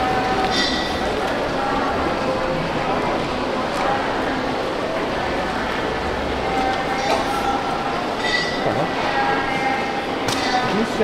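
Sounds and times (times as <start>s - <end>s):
airport terminal hall rumble: 0.0s - 11.0s.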